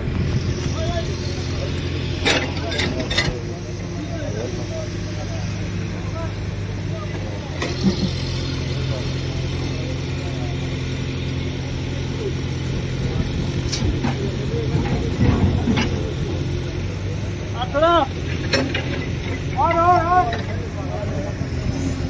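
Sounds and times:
diesel engine running: 0.0s - 22.0s
workers' voices: 0.0s - 22.0s.

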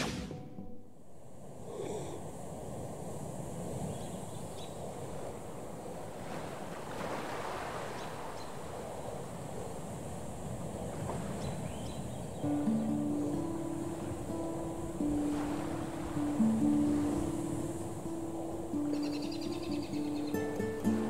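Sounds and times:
ocean surf: 0.0s - 21.0s
wind: 0.0s - 21.0s
music with long held notes: 12.4s - 21.0s.

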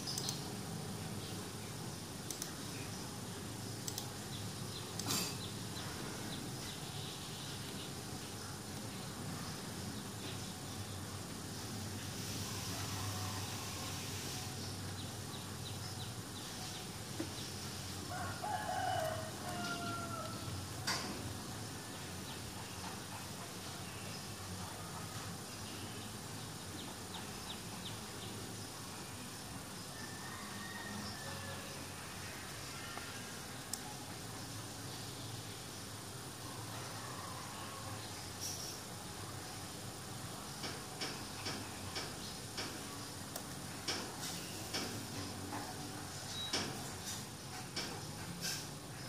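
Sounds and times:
steady background hiss: 0.0s - 49.0s
light sharp ticks: 0.1s - 0.4s, 2.2s - 2.6s, 3.8s - 4.2s.

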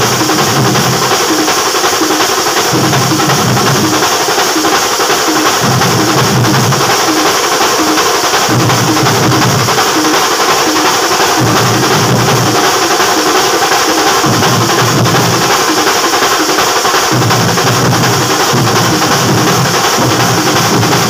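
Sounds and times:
deep drum strokes: 0.0s - 16.3s
fast snare drum beating: 0.0s - 21.0s.

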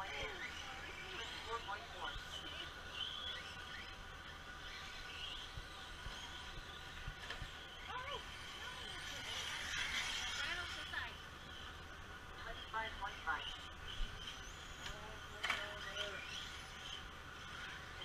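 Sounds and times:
rc car motors whining: 0.0s - 18.0s.

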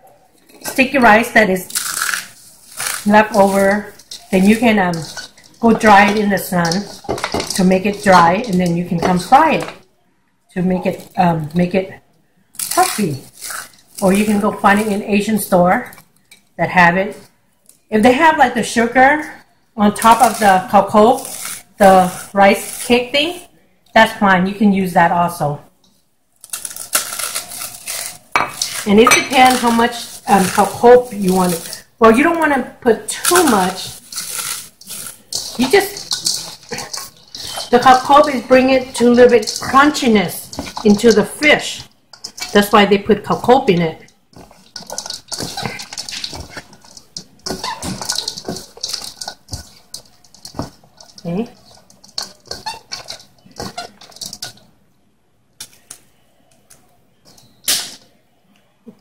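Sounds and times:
rice crackers crunching in metal bowl: 0.4s - 9.8s, 10.6s - 11.8s, 12.5s - 16.0s, 19.8s - 23.5s, 26.4s - 54.8s.

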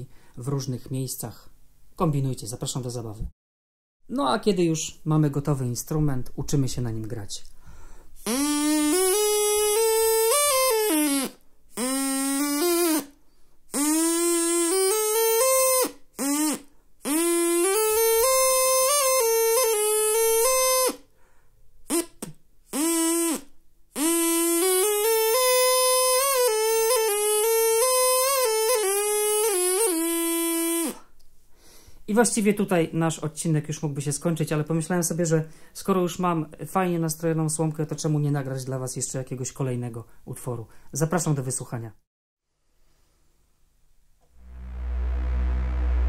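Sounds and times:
straw reed instrument playing: 44.4s - 46.0s.

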